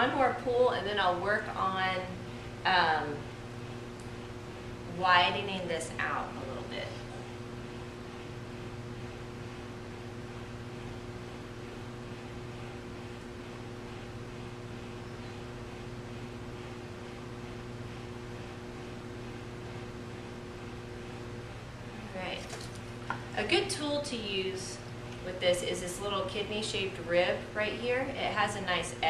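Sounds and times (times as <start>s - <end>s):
pottery wheel motor humming: 0.0s - 29.0s.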